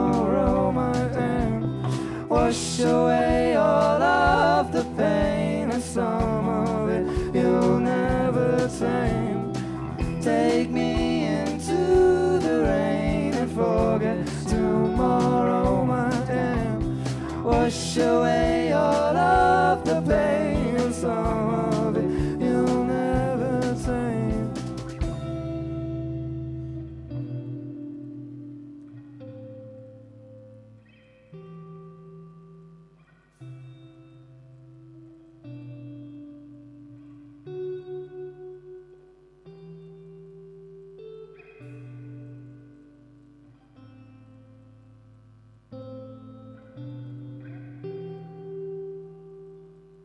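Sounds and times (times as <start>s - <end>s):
electric guitar with reverb: 0.0s - 50.0s.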